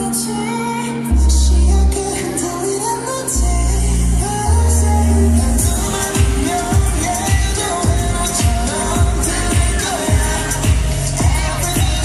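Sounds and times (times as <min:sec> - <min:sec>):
person singing: 0:00.0 - 0:12.0
pop song over loudspeakers: 0:00.0 - 0:12.0
kick drum beat: 0:05.6 - 0:12.0.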